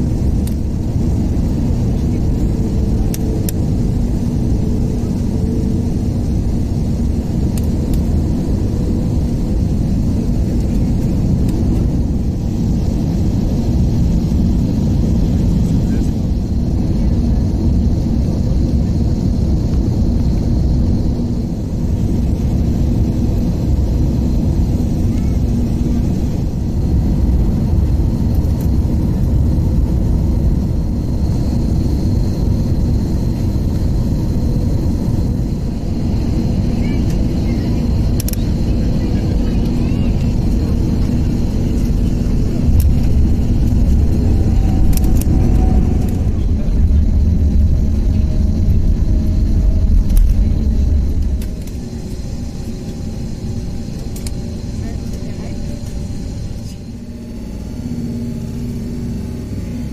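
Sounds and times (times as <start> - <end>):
jet airliner cabin rumble: 0.0 - 59.9.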